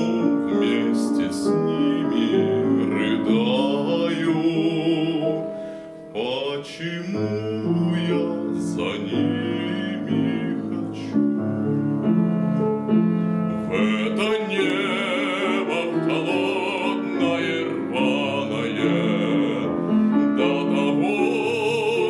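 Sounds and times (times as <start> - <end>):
man singing with vibrato: 0.0 - 11.8, 13.6 - 22.0
grand piano: 0.0 - 22.0.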